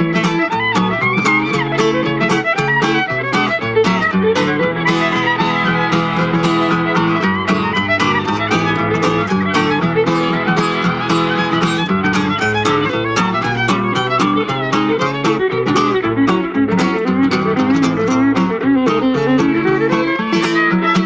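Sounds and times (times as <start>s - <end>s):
bowed fiddle melody: 0.0s - 21.0s
strummed acoustic guitar: 0.0s - 21.0s.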